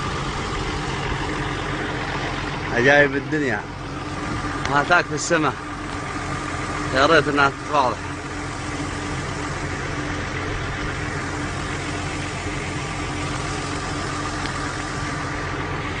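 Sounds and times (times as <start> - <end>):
engine idling: 0.0 - 16.0.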